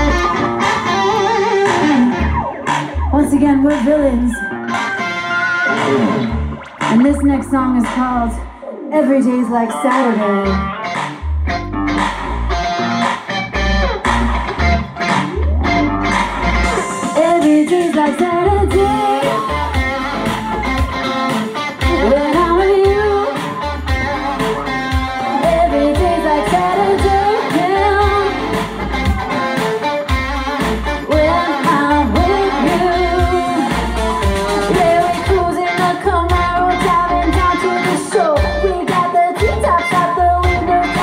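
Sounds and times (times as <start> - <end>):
bass guitar: 0.0 - 41.0
electric guitar: 0.0 - 41.0
woman singing: 3.1 - 4.4, 6.9 - 10.7, 16.8 - 19.8, 21.8 - 23.5, 25.2 - 28.7, 31.0 - 41.0.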